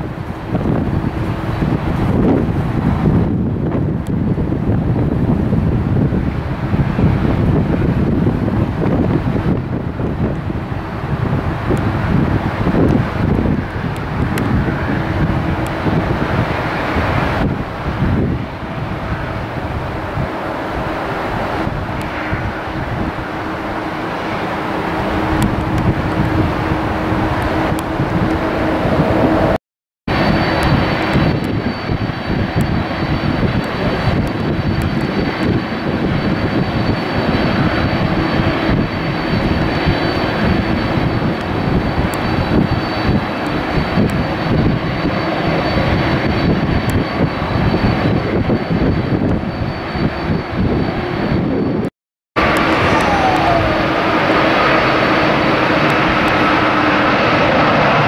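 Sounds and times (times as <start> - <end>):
jet engines rumbling: 0.0 - 58.0.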